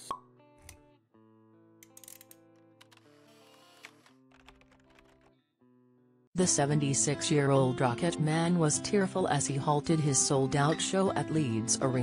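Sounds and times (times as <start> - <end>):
soft background music: 6.4 - 12.0.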